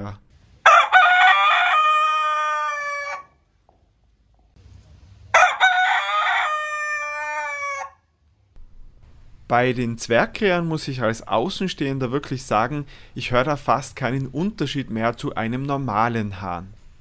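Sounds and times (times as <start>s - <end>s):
rooster crowing: 0.6s - 3.4s, 5.3s - 8.1s.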